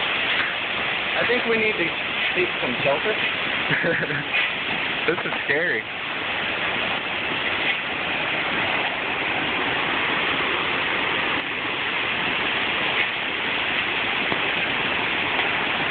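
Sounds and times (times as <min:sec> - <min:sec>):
torrential rain pouring: 0:00.0 - 0:15.9
wind: 0:00.0 - 0:15.9.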